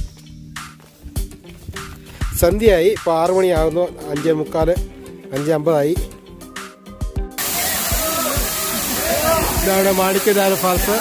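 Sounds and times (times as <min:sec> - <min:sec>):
background music: 0:00.0 - 0:11.0
people's voices: 0:07.4 - 0:11.0
waterfall rushing: 0:07.4 - 0:11.0.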